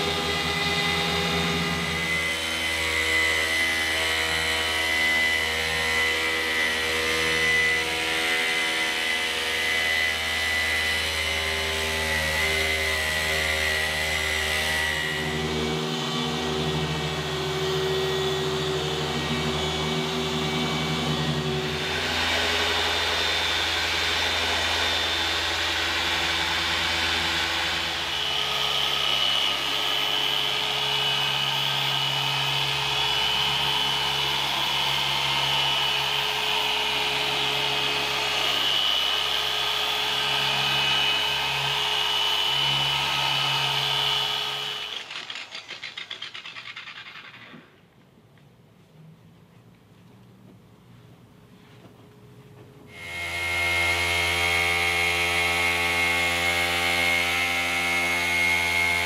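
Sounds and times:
polisher motor hum and whine: 0:00.0 - 0:45.1, 0:52.9 - 0:59.0.

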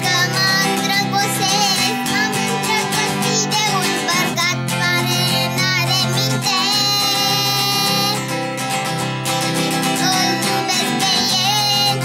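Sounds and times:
girl singing folk song: 0:00.0 - 0:12.0
strummed acoustic guitar: 0:00.0 - 0:12.0.

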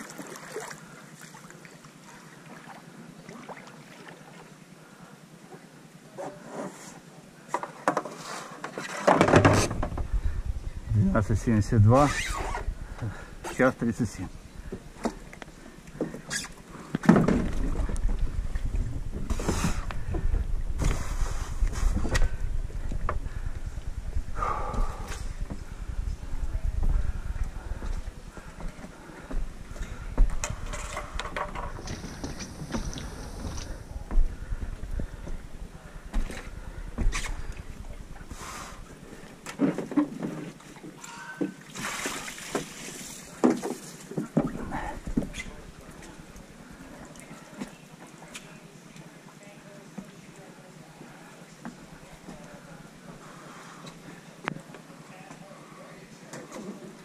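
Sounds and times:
wind rumble on microphone: 0:09.4 - 0:15.6, 0:17.2 - 0:39.4.

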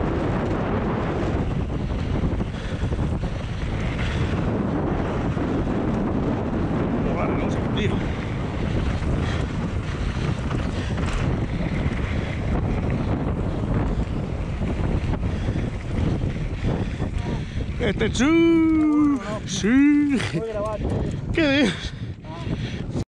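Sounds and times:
bike clicks and rattles: 0:00.0 - 0:23.0
wind rushing over microphone: 0:00.0 - 0:23.0.

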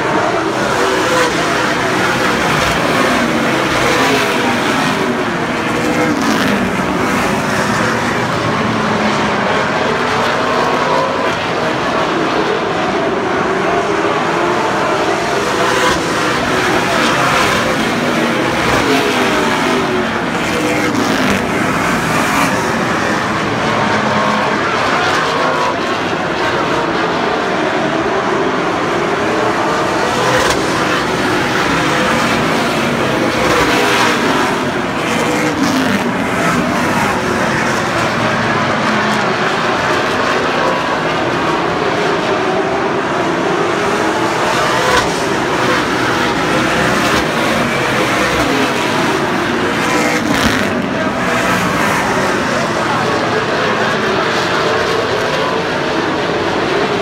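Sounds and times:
race car engines: 0:00.0 - 0:57.0.

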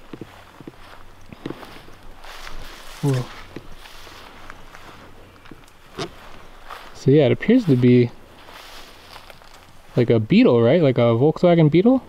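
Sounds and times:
footsteps through tall grass: 0:00.0 - 0:11.1
grass brushing against legs: 0:00.0 - 0:12.0.

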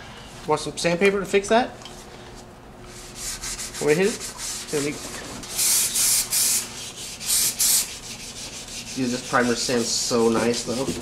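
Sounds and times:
sandpaper strokes on a panel: 0:02.9 - 0:11.0.

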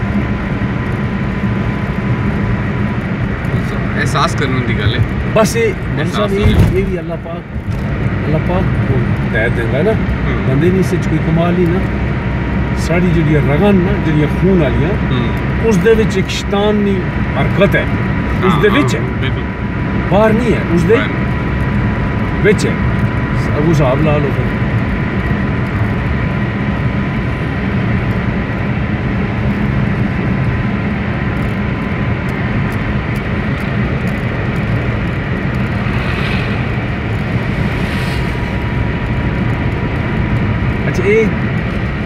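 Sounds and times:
engine and road drone: 0:00.0 - 0:42.0
high whine: 0:18.0 - 0:19.8, 0:32.6 - 0:42.0.

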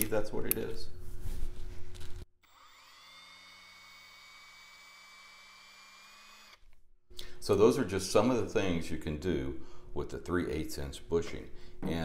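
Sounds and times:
electric drill running: 0:02.4 - 0:06.6.

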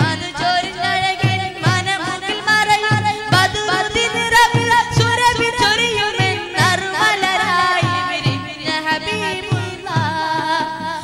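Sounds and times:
group of singers: 0:00.0 - 0:11.0.

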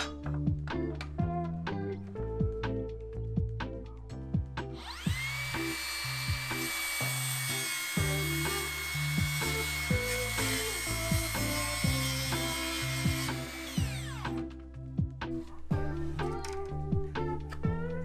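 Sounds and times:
circular saw whining: 0:04.8 - 0:14.6.

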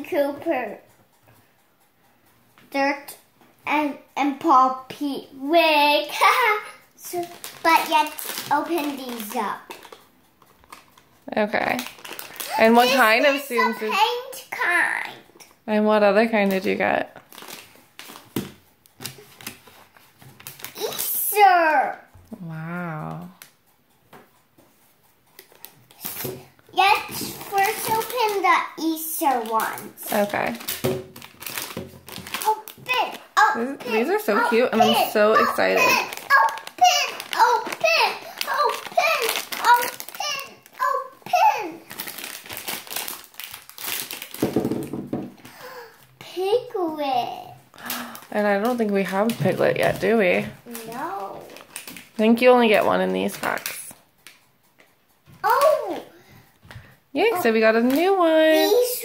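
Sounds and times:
foil packets crinkling: 0:07.0 - 0:13.8, 0:16.3 - 0:21.2, 0:27.0 - 0:46.2, 0:47.8 - 0:54.4, 0:57.2 - 0:58.7
young child chattering: 0:12.4 - 0:15.3, 0:20.8 - 0:21.8, 0:32.4 - 0:41.9, 0:55.4 - 0:56.2.

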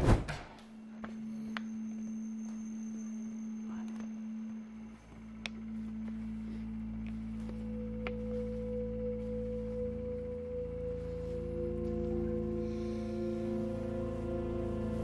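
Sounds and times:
deeper hum: 0:00.0 - 0:15.0
low steady droning tone: 0:00.6 - 0:15.0.

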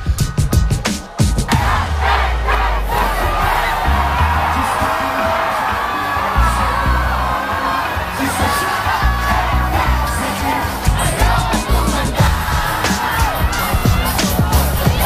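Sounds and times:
crowd cheering and singing: 0:00.0 - 0:15.0
loud live music with heavy bass: 0:00.0 - 0:15.0.

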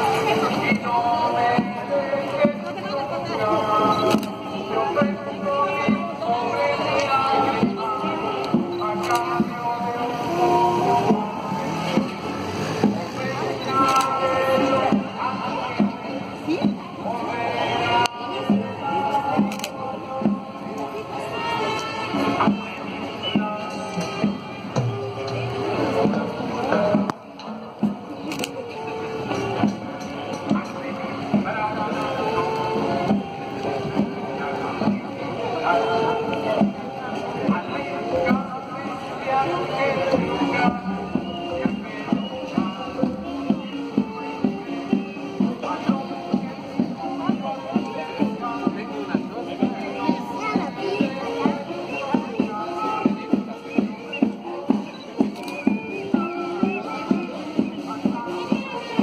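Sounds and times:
procession band music: 0:00.0 - 0:59.0.

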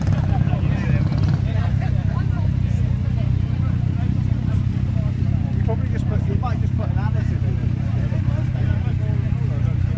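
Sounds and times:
motorcycle engine running steadily: 0:00.0 - 0:09.9
people chattering: 0:00.0 - 0:09.9.

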